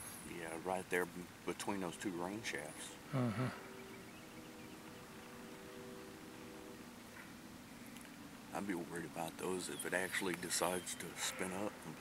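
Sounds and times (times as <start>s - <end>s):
faint steady hum: 0.0s - 12.0s
low hiss: 0.0s - 12.0s.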